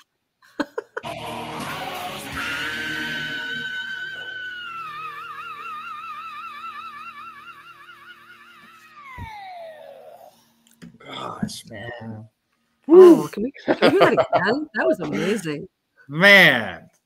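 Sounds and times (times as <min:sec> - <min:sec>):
heavy metal band playing: 0:01.1 - 0:03.8
singer's high held scream: 0:02.2 - 0:10.3.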